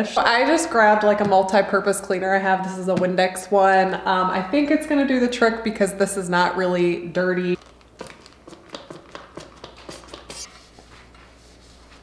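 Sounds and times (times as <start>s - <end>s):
spray bottle squirting and clicking: 8.0s - 10.5s.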